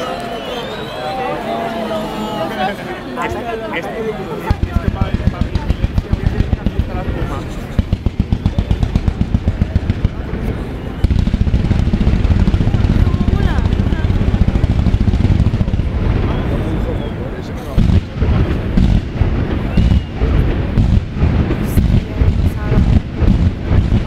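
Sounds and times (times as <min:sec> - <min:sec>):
fireworks firing: 0:04.3 - 0:24.0
loud fireworks bangs: 0:04.4 - 0:24.0.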